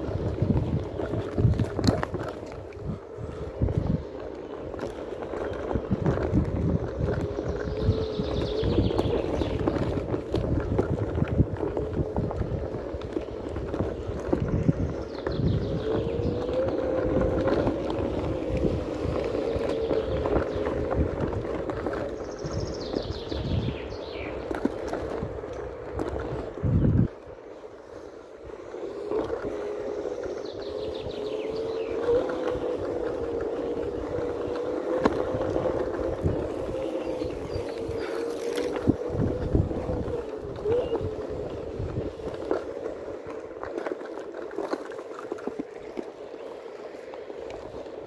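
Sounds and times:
electric motor whine: 0:00.0 - 0:23.7, 0:28.4 - 0:48.0
tyre rumbling on dirt: 0:00.0 - 0:27.1, 0:28.6 - 0:48.0
wind buffeting microphone: 0:00.0 - 0:48.0.

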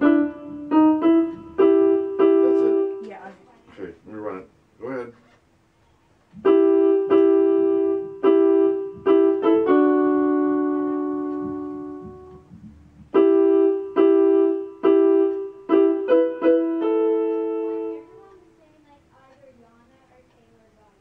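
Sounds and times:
digital piano chords: 0:00.0 - 0:05.1, 0:06.2 - 0:18.6.

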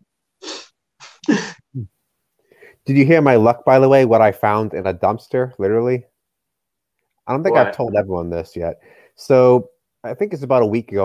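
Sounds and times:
person's breathy vocal outbursts: 0:00.4 - 0:01.9, 0:07.5 - 0:07.8.

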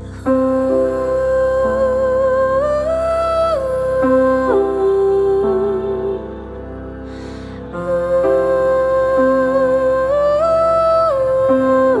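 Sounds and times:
slow sustained chords music: 0:00.0 - 0:12.0.

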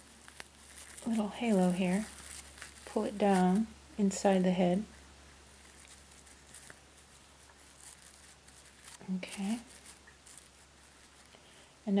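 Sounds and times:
rustling and crinkling stuffing: 0:00.0 - 0:12.0.

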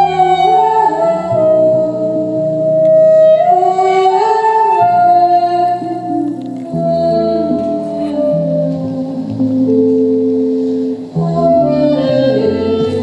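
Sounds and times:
woman singing long notes: 0:00.0 - 0:10.0, 0:11.1 - 0:13.0
double bass: 0:00.0 - 0:13.0
acoustic guitars: 0:04.8 - 0:13.0.

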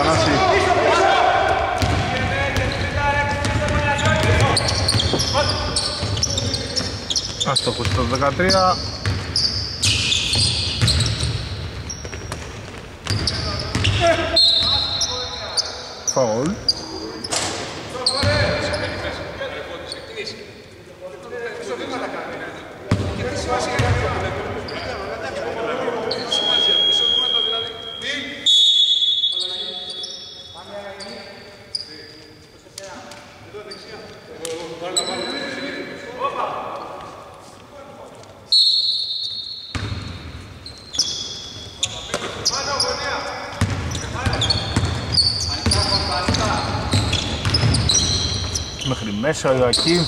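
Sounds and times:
players' voices: 0:00.0 - 0:11.4, 0:12.5 - 0:38.5, 0:41.0 - 0:50.0
basketball bouncing on hardwood: 0:01.8 - 0:02.7, 0:43.6 - 0:48.6.

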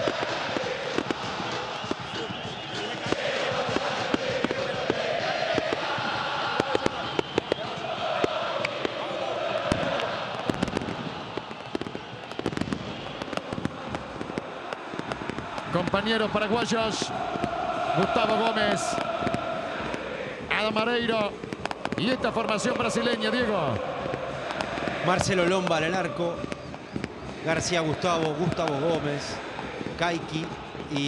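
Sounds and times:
firework bangs: 0:00.0 - 0:31.0
stadium crowd chanting: 0:00.0 - 0:31.0.

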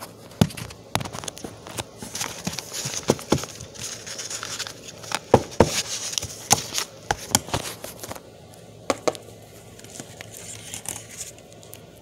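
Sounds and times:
rustle of cover and paper: 0:00.0 - 0:08.2, 0:09.6 - 0:11.6.

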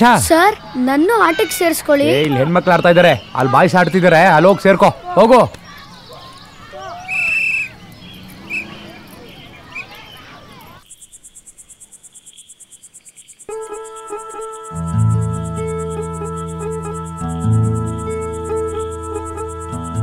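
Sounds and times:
crickets chirring: 0:00.0 - 0:20.0
film score held notes: 0:13.5 - 0:20.0.

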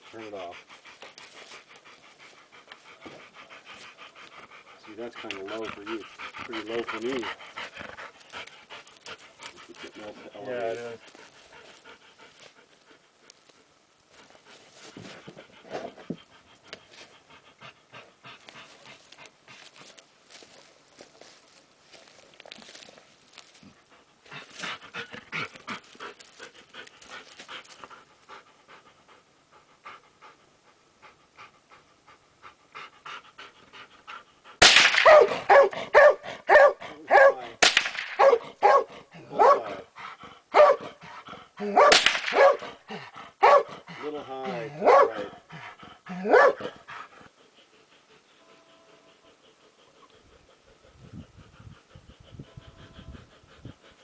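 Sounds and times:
dog panting: 0:00.0 - 0:37.6, 0:38.2 - 0:54.0
sharp cracks: 0:34.6 - 0:35.5, 0:37.6 - 0:38.4, 0:41.9 - 0:42.7
dog barking: 0:35.0 - 0:37.5, 0:38.2 - 0:39.8, 0:40.5 - 0:41.0, 0:41.7 - 0:42.7, 0:43.4 - 0:43.7, 0:44.8 - 0:45.3, 0:46.2 - 0:46.7.

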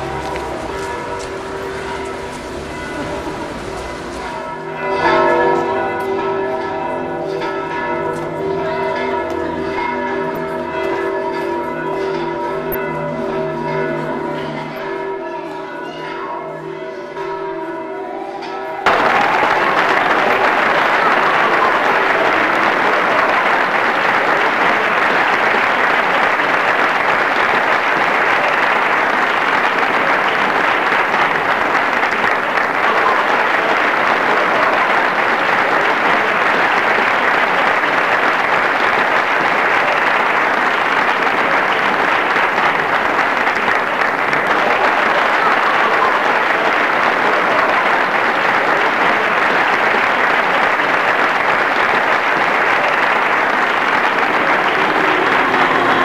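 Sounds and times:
crowd applause: 0:00.0 - 0:05.9, 0:18.8 - 0:56.0
church bells ringing: 0:00.0 - 0:56.0.

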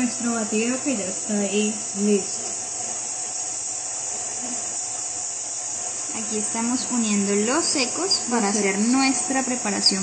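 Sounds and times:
high-pitched background hiss: 0:00.0 - 0:10.0.

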